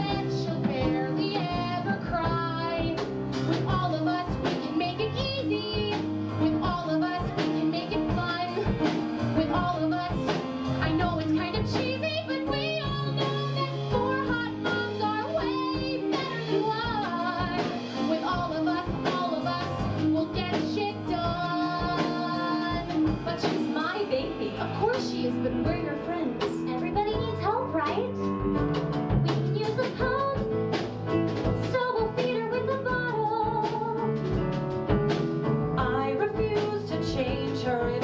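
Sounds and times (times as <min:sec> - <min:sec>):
women singing musical-theatre song: 0:00.0 - 0:27.9, 0:29.3 - 0:30.5, 0:31.6 - 0:34.1, 0:35.8 - 0:38.0
live band with drums: 0:00.0 - 0:38.0.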